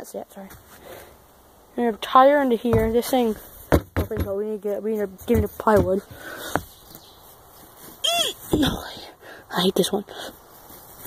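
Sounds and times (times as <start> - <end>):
faint handling noise: 10.4 - 11.0.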